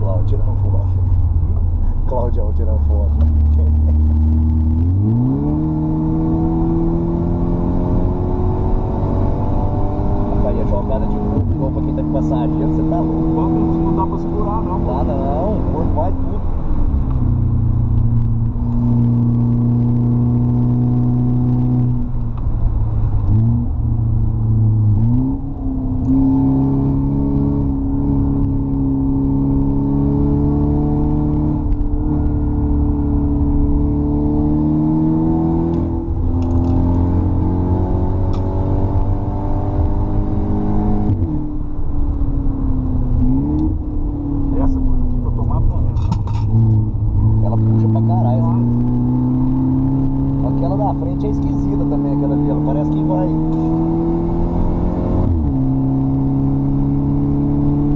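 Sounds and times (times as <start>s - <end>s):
car engine running hard: 0.0s - 57.9s.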